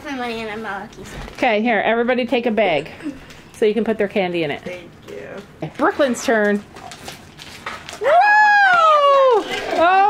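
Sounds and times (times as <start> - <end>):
high-pitched woo cheer: 8.0 - 10.0.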